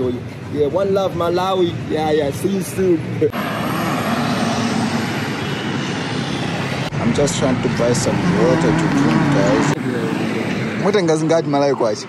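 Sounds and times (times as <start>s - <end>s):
passing vehicles rushing: 0.0s - 12.0s.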